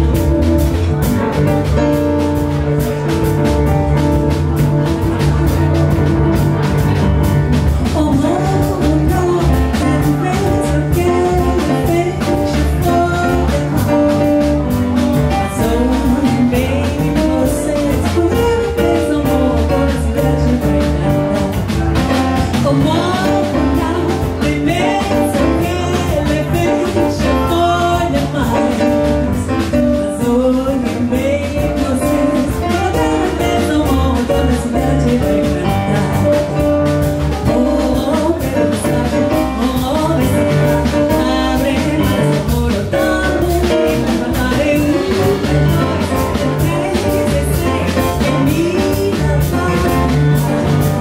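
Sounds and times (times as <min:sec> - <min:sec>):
drum kit: 0:00.0 - 0:51.0
jazz band playing: 0:00.0 - 0:51.0
woman singing: 0:07.8 - 0:51.0.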